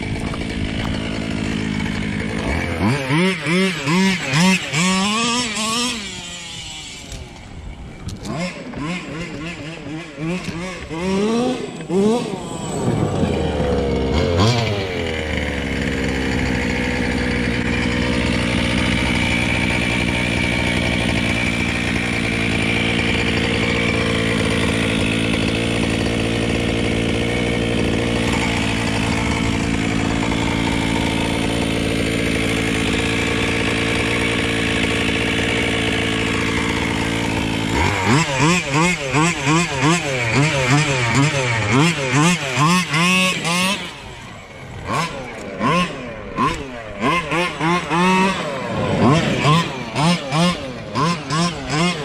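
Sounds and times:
two-stroke engine revving and idling: 0.0s - 52.0s.

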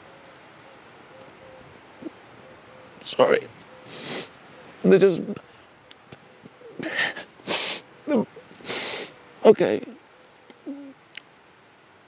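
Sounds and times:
sharp sniff: 3.8s - 4.4s, 7.0s - 7.9s, 8.6s - 9.2s
man crying quietly: 6.7s - 9.2s.

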